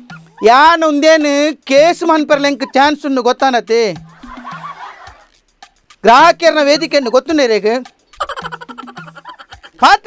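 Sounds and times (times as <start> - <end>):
faint background music: 0.0 - 10.0
laughter: 4.0 - 5.4, 8.2 - 9.8.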